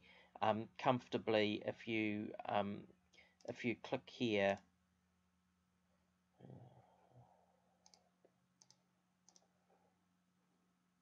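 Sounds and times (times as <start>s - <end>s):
computer mouse clicks: 7.8s - 9.5s.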